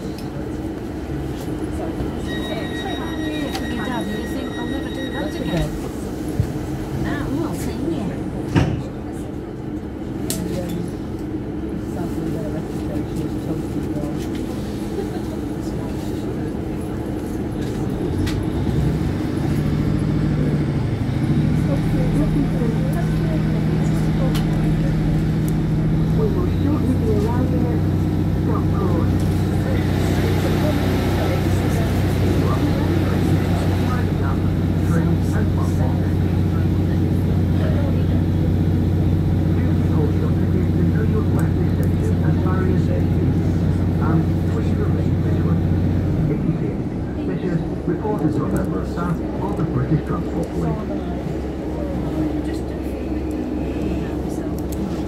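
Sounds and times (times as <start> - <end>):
train diesel engine droning: 0.0 - 55.0.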